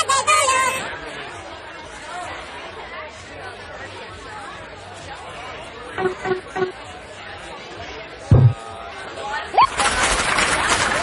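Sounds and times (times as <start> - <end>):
indistinct chatter of voices: 0.0 - 10.8.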